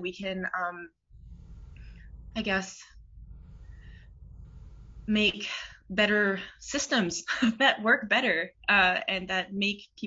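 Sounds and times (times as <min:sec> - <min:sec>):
low hum of microphone noise: 0:01.0 - 0:07.4
faint intake of breath: 0:01.1 - 0:05.9.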